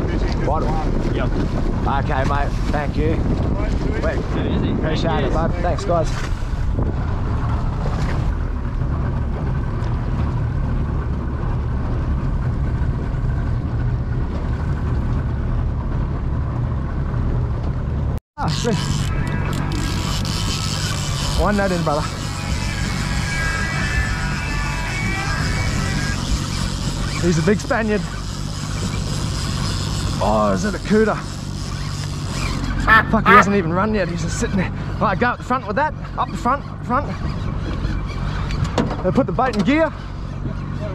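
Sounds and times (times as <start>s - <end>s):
outboard motor droning: 0.0s - 40.9s
rush of wind and water: 0.0s - 40.9s.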